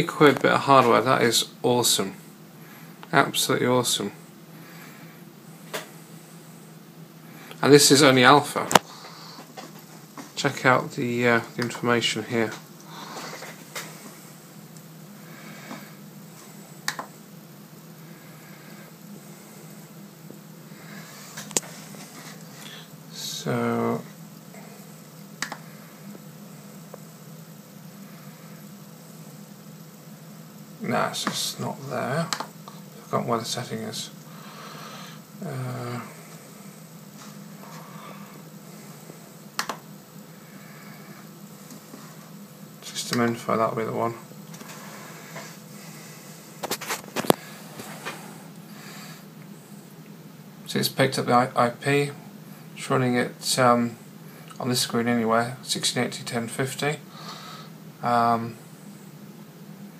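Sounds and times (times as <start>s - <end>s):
low room hum: 0.0s - 59.9s
computer mouse clicks: 16.8s - 17.1s, 25.4s - 25.6s, 39.6s - 39.8s.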